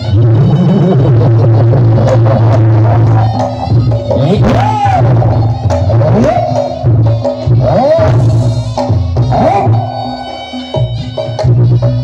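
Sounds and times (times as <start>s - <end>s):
gamelan melody: 0.0s - 12.0s.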